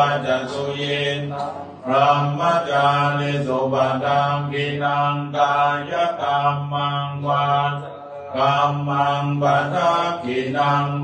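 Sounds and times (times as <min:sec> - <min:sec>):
monk chanting in low monotone: 0:00.0 - 0:11.0.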